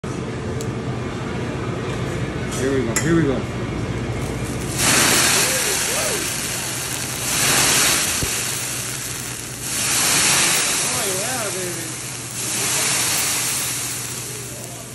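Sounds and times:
liquid hissing on hot griddle: 4.2s - 14.9s.

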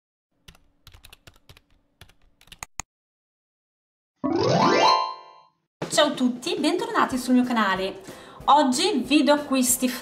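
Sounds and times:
keyboard typing clicks: 0.5s - 2.9s.

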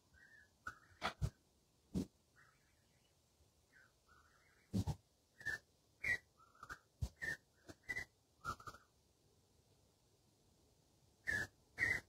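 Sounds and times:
raspy whistle-like animal calls: 5.4s - 8.8s, 11.2s - 12.0s.

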